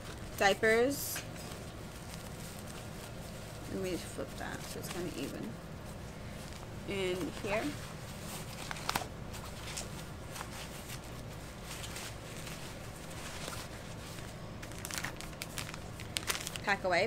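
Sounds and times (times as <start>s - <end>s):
diapers and bag rustling: 0.0s - 17.0s.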